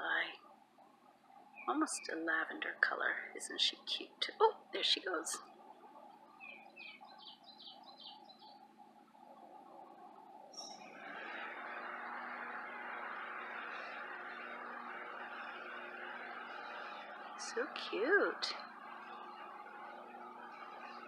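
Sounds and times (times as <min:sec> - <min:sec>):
faint low hum: 0:00.0 - 0:21.0
bird chirping: 0:01.4 - 0:02.6, 0:04.8 - 0:08.7, 0:10.5 - 0:10.9
steady rushing noise: 0:09.0 - 0:21.0.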